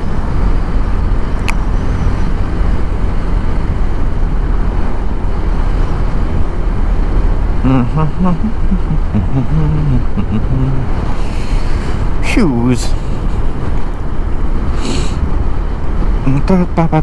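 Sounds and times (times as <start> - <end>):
wind rushing over microphone: 0.0 - 16.3.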